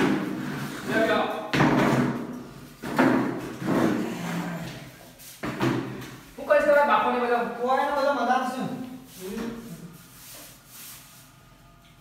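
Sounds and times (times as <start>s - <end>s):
plastic chairs knocking on floor: 0.0s - 6.2s
chair leg scraping groan: 3.5s - 5.0s.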